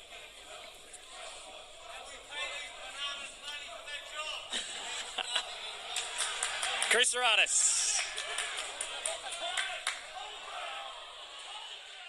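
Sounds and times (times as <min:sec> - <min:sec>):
man's voice: 0:00.0 - 0:05.2, 0:06.8 - 0:08.1
crowd noise: 0:00.0 - 0:12.0.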